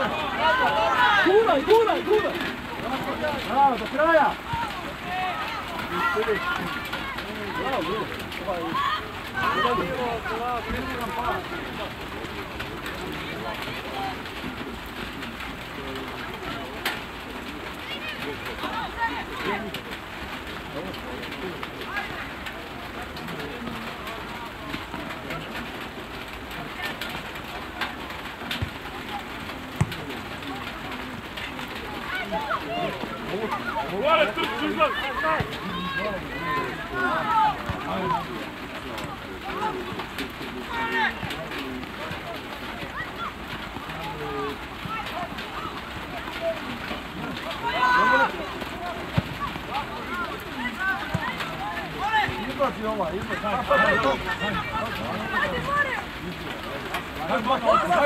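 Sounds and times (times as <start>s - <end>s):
people shouting: 0.0s - 11.9s, 17.8s - 19.8s, 31.3s - 38.4s, 40.6s - 41.2s, 42.3s - 56.1s, 57.2s - 58.0s
open-air noise: 0.0s - 58.0s.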